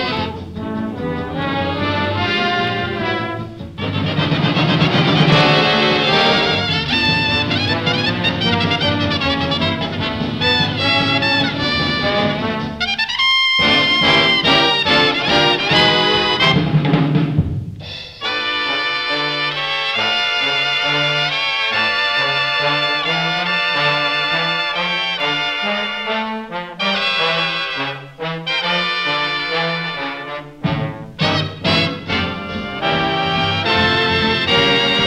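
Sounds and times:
dance band brass playing: 0:00.0 - 0:35.0.

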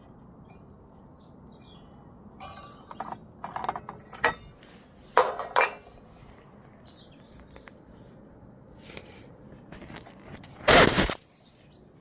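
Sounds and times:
birds chirping: 0:00.0 - 0:09.1, 0:11.2 - 0:12.0
clinks and knocks of metal fitting: 0:02.4 - 0:04.6, 0:05.2 - 0:05.9.

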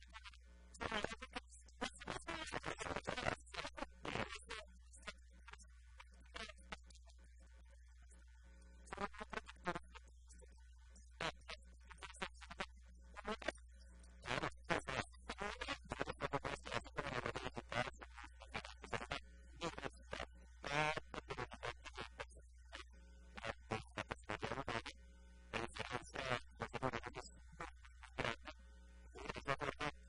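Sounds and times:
low steady hum: 0:00.0 - 0:30.0
woman talking: 0:00.8 - 0:07.3.

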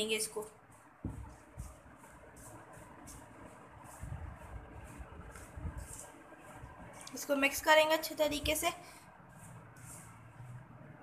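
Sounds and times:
flour mixed in steel bowl: 0:00.0 - 0:11.0
soft low thumps: 0:01.0 - 0:02.0.

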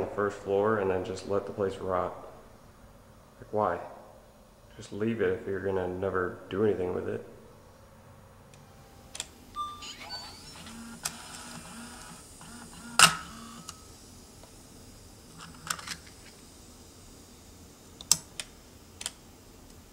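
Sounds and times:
short faint beeps: 0:09.6 - 0:10.8.

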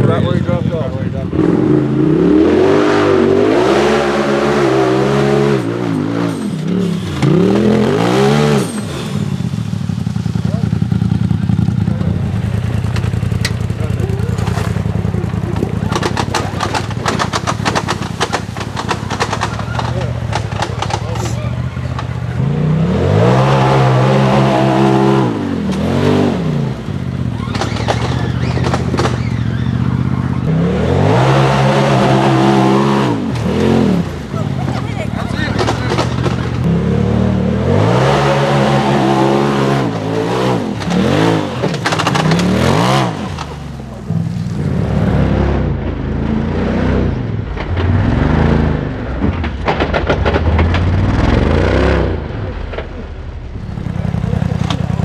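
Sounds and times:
off-road vehicle engine revving: 0:00.0 - 0:55.0.

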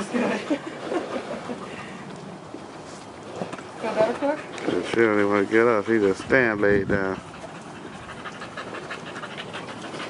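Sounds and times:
dog panting: 0:04.1 - 0:10.0.

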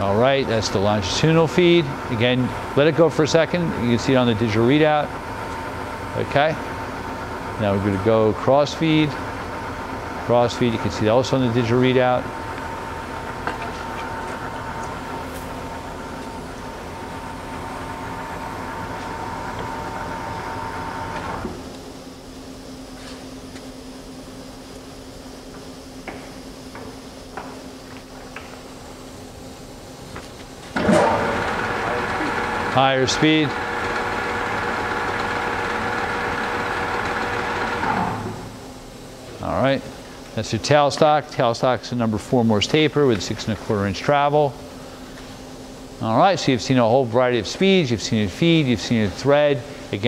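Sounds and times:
lathe gear whine: 0:00.0 - 0:50.0
lathe mechanical hum: 0:00.0 - 0:50.0.

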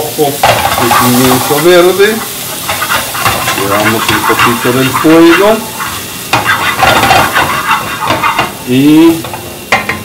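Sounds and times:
peppers sizzling in frying pan: 0:00.0 - 0:10.0
wooden spoon scraping pan: 0:00.4 - 0:08.6.

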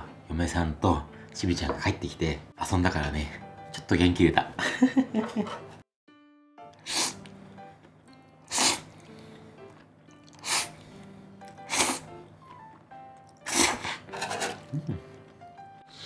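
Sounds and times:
soft background music: 0:00.0 - 0:16.0
noodles being slurped: 0:08.4 - 0:10.8, 0:11.4 - 0:12.6, 0:13.2 - 0:14.7.

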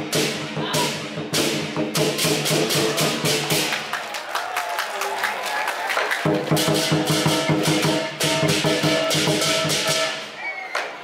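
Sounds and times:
drum beating fast: 0:00.0 - 0:03.9, 0:06.2 - 0:10.2.

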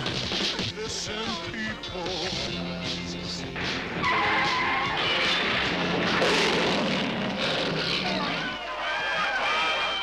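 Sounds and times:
soundtrack music: 0:00.1 - 0:08.7
tyres skidding with squeal: 0:04.0 - 0:06.6.

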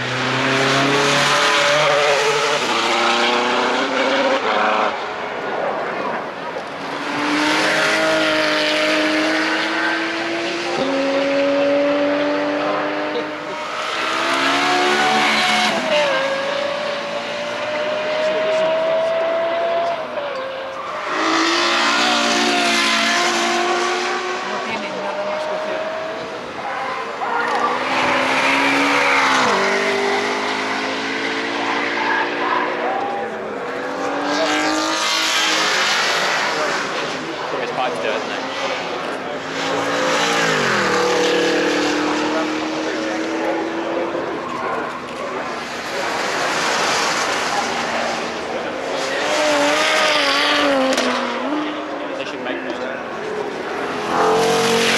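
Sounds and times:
cars accelerating hard past: 0:00.0 - 0:54.9.

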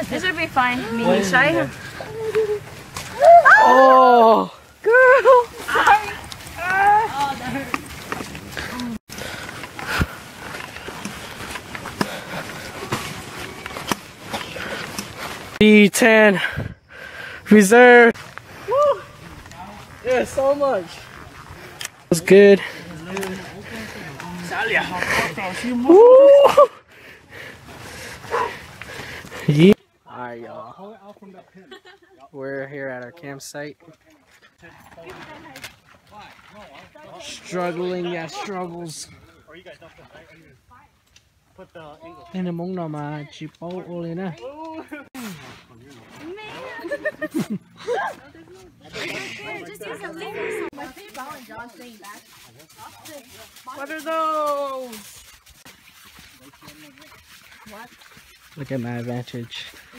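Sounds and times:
bags and gear rustling: 0:05.4 - 0:15.6, 0:49.7 - 0:59.9
footsteps on dirt trail: 0:05.4 - 0:15.6, 0:18.1 - 0:25.9, 0:27.0 - 0:29.7, 0:45.2 - 0:59.9
man talking: 0:15.6 - 0:16.5, 0:17.4 - 0:18.2.

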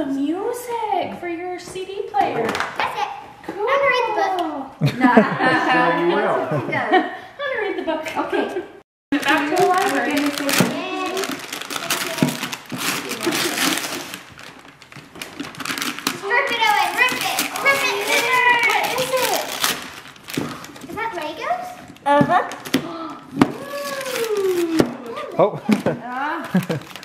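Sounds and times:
children's voices: 0:09.2 - 0:13.8, 0:16.1 - 0:19.7, 0:22.8 - 0:25.4
wrapping paper tearing: 0:09.2 - 0:22.8, 0:23.5 - 0:27.0.

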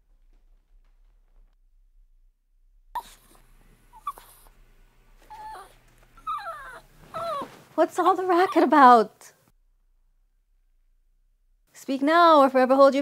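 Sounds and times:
small dog whining: 0:03.0 - 0:04.5, 0:05.2 - 0:07.6, 0:08.4 - 0:08.7.

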